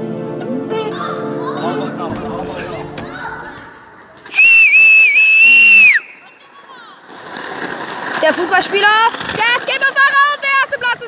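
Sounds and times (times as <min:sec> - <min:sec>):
loud shrill whistle: 0:04.3 - 0:06.2.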